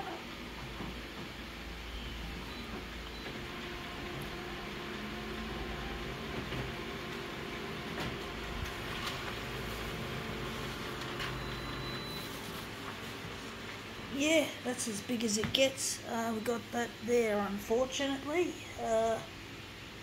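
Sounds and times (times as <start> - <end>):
photocopier humming: 0.4 - 20.0.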